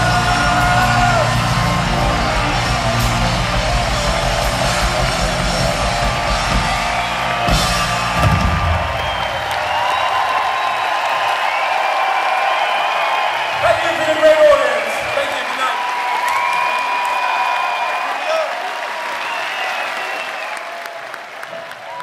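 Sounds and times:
live synth-pop band: 0:00.0 - 0:09.8
crowd cheering and whooping: 0:00.0 - 0:22.0.

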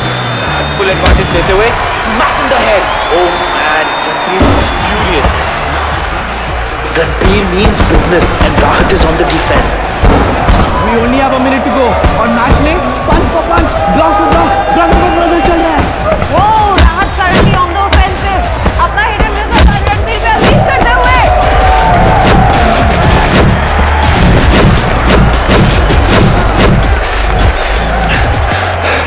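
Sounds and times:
crowd shouting and cheering: 0:00.0 - 0:29.0
backing music with bass: 0:05.5 - 0:29.0
boxing punches thudding: 0:07.2 - 0:11.2, 0:11.9 - 0:27.6.

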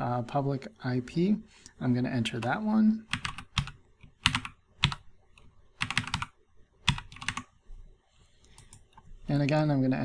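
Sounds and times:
computer keyboard typing: 0:02.3 - 0:07.5.

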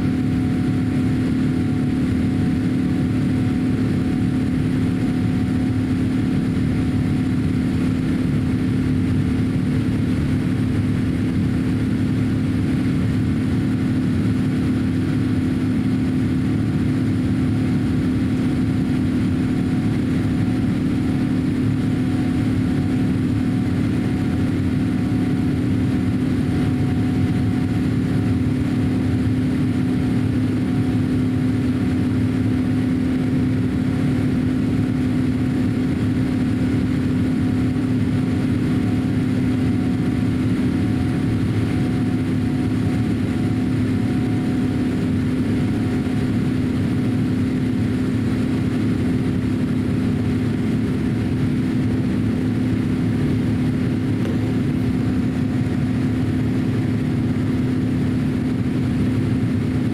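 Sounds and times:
airliner cabin engine drone: 0:00.0 - 0:59.9
constant low hum: 0:00.0 - 0:59.9.

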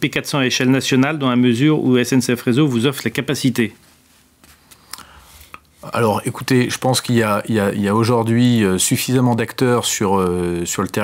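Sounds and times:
man speaking: 0:00.0 - 0:03.8, 0:05.8 - 0:11.0.

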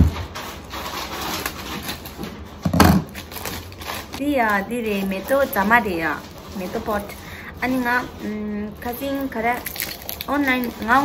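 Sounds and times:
package rustling and clicking: 0:09.5 - 0:11.0.

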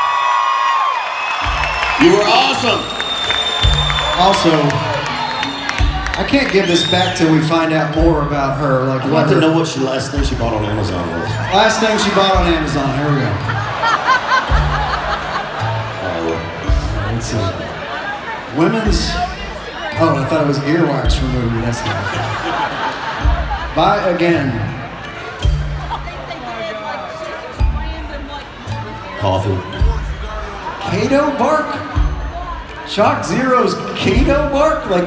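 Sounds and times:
crowd cheering: 0:00.0 - 0:08.0, 0:08.7 - 0:35.0
live concert music through speakers: 0:00.0 - 0:35.0.

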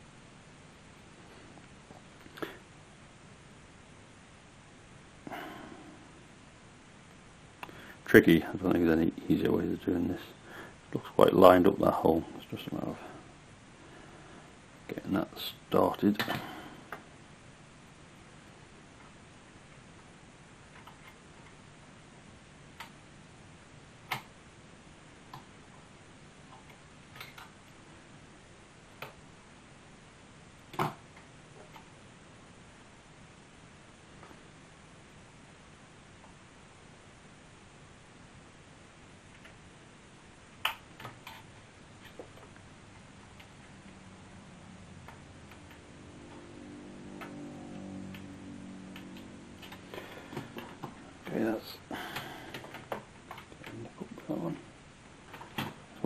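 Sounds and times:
faint hum: 0:00.0 - 0:56.0.

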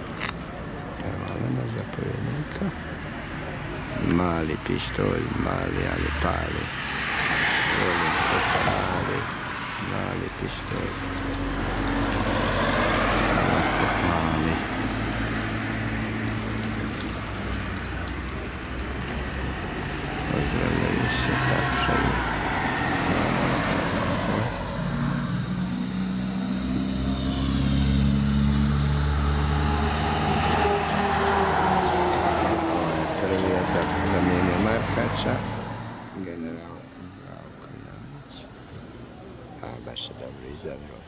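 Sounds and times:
voices: 0:00.0 - 0:25.0, 0:29.3 - 0:41.0.

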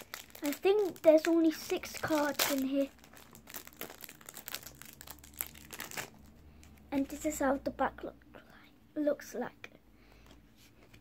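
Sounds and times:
card wrapper crinkling: 0:00.0 - 0:06.9.

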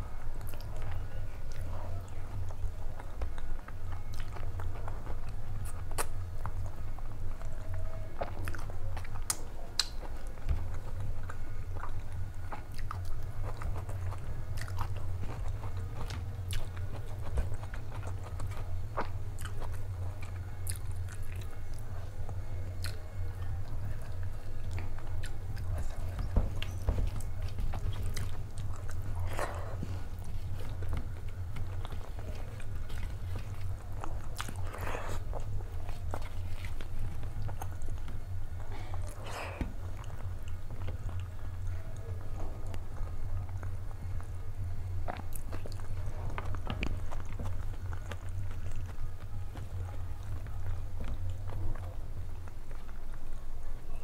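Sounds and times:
steady low hum: 0:00.0 - 0:54.0
chewing and mouth sounds: 0:00.1 - 0:54.0.

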